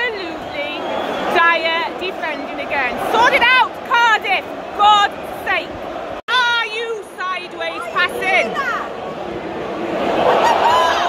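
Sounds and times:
stadium crowd murmur: 0.0 - 11.0.

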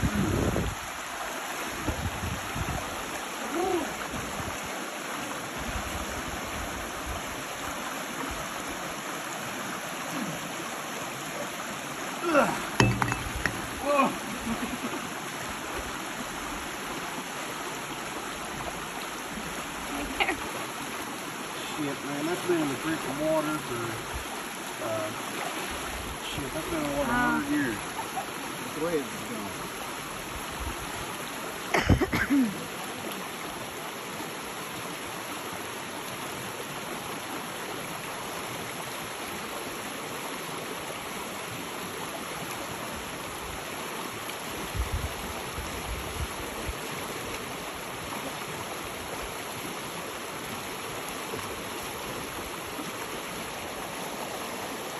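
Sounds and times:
stream water rushing: 0.0 - 54.9.

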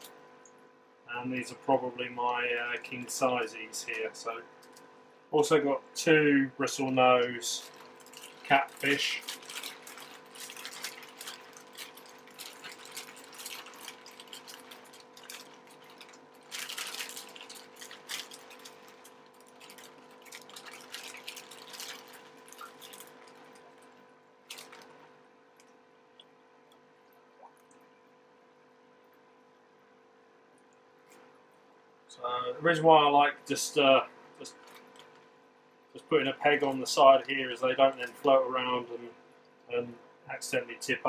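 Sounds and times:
faint steady hum: 0.0 - 41.0
water sloshing in bags: 5.5 - 27.9, 34.4 - 35.3, 36.0 - 38.4
plastic bags crinkling: 6.7 - 25.1, 34.5 - 35.3.

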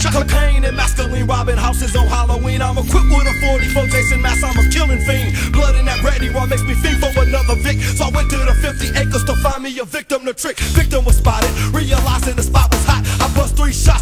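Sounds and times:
rapping over a beat: 0.0 - 14.0.

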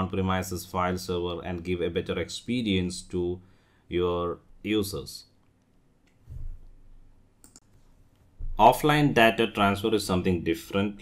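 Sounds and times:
soft low thud: 6.3 - 6.6.

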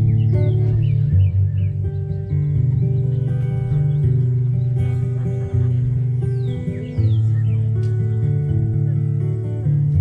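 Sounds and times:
guitar melody: 0.0 - 10.0.

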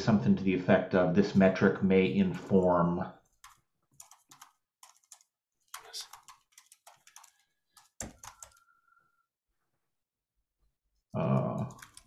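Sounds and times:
computer keyboard typing: 3.3 - 8.7, 11.4 - 12.0.

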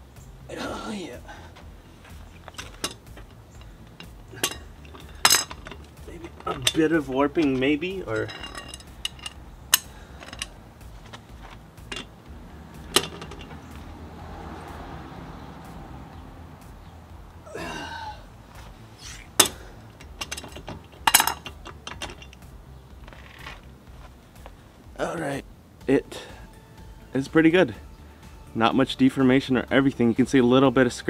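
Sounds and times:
metal tools clinking: 2.0 - 12.2, 12.8 - 13.8, 19.4 - 22.5
breaker bar and socket knocking: 2.4 - 6.8, 11.8 - 12.2, 12.8 - 13.7, 19.4 - 22.4.

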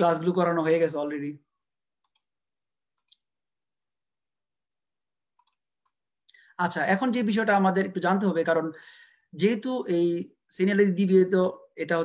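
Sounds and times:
computer mouse clicks: 2.0 - 2.3, 2.9 - 3.3, 5.4 - 6.4.

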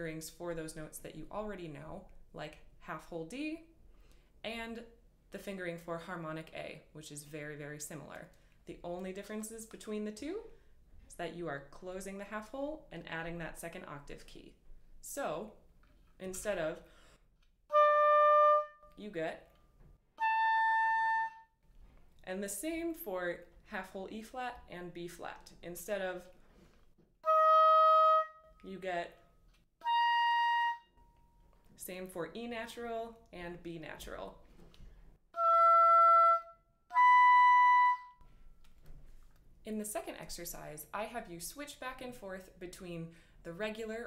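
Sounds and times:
oboe sustained note: 17.7 - 19.0, 20.2 - 21.5, 27.2 - 28.6, 29.8 - 31.0, 35.4 - 38.2.

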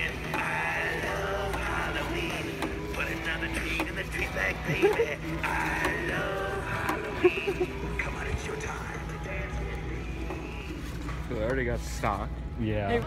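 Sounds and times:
voice singing over music: 0.0 - 10.8.

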